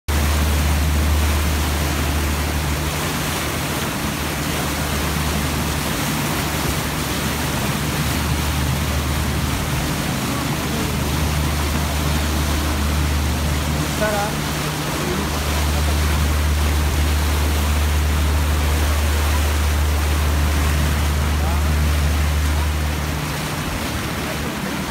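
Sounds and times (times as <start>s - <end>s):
boat engine drone: 0.1s - 24.9s
churning wake water: 0.1s - 24.9s.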